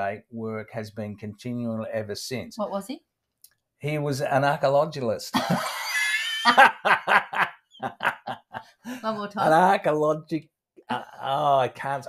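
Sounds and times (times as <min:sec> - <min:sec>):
people laughing: 0:05.3 - 0:09.7.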